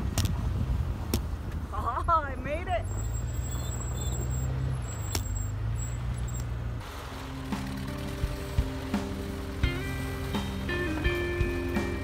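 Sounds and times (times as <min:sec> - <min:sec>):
engine running: 0:03.2 - 0:12.0
background music with held notes: 0:07.1 - 0:12.0.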